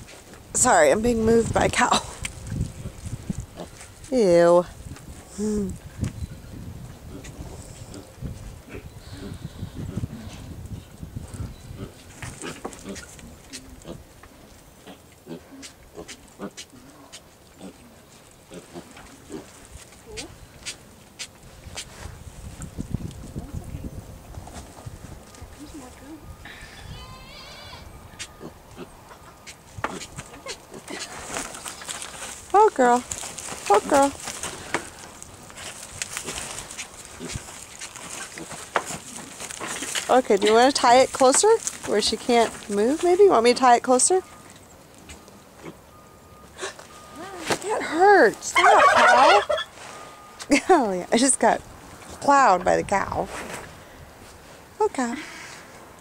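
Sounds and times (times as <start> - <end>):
farm animals low calls: 7.0 - 10.5, 11.6 - 14.1, 14.8 - 20.5, 26.4 - 31.3, 48.0 - 49.7
scuffling in a pen: 11.4 - 23.4, 26.7 - 43.5, 47.3 - 50.6, 53.1 - 54.7.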